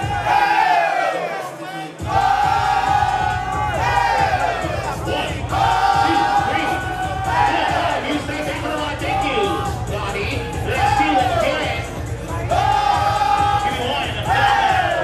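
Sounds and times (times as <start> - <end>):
bass beat: 0.0 - 0.8, 2.0 - 15.0
crowd: 0.0 - 15.0.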